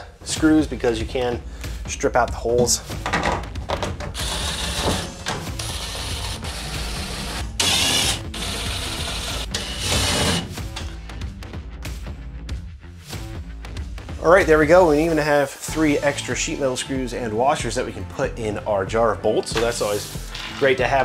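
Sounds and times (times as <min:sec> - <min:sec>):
impact driver hammering screws: 0:04.2 - 0:10.5.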